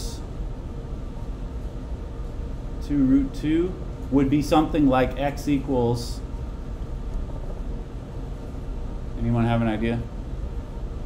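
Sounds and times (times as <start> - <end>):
low rumbling hum: 0.0 - 11.0.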